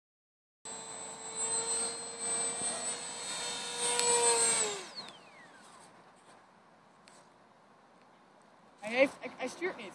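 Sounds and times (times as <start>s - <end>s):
model plane motor whining: 0.7s - 5.9s.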